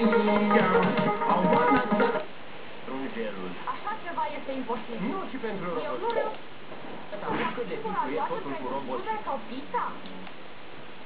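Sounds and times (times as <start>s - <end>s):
voices speaking on television: 0.0s - 10.4s.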